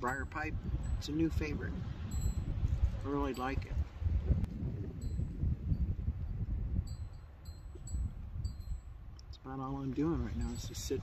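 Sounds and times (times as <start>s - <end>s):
wind buffeting microphone: 0.0s - 11.0s
wind chime ringing: 2.1s - 3.7s, 6.9s - 9.0s.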